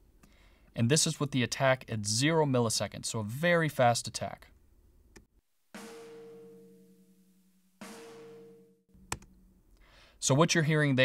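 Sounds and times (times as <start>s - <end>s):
compressed snare drum hits: 5.8s - 8.8s.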